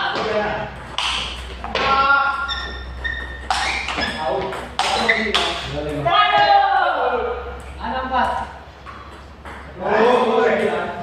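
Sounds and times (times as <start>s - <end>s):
table tennis ball pinging: 0.0s - 6.5s, 7.5s - 11.0s
men's voices: 9.5s - 11.0s.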